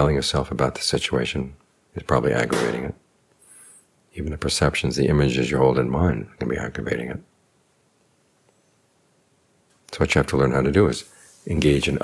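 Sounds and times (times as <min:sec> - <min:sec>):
man's voice: 0:00.0 - 0:03.0, 0:10.0 - 0:12.0.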